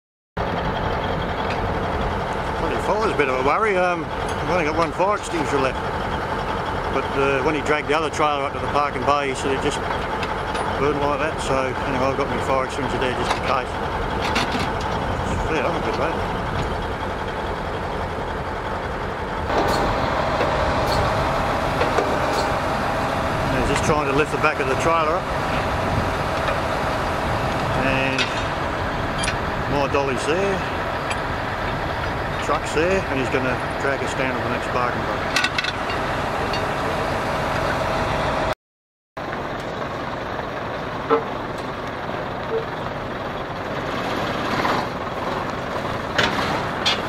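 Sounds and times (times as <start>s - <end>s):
tow truck diesel engine revving: 0.4s - 38.6s, 39.2s - 47.0s
steady whine: 0.6s - 38.5s.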